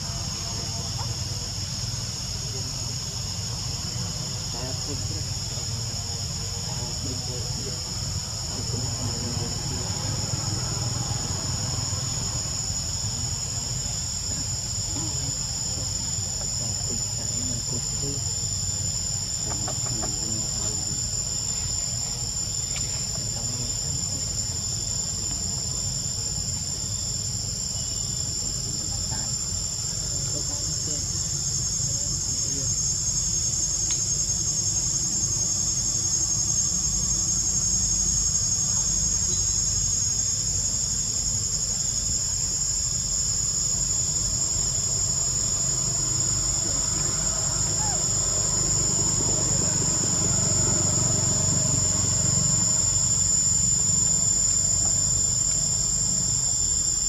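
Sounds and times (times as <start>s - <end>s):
insects calling: 0.0s - 57.0s.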